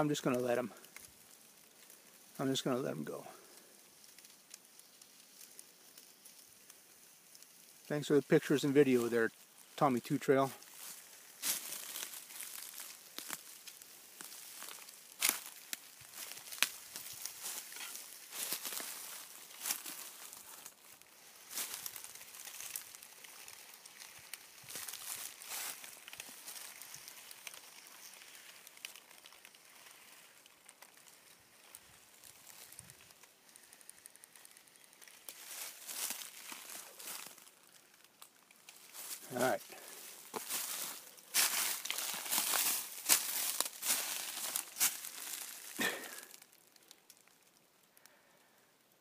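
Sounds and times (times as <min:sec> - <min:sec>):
dry leaves rustling and crackling: 0:00.0 - 0:47.6.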